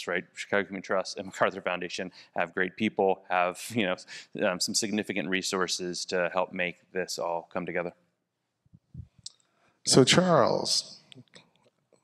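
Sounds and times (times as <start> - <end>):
man speaking: 0.0 - 7.9, 9.9 - 11.1.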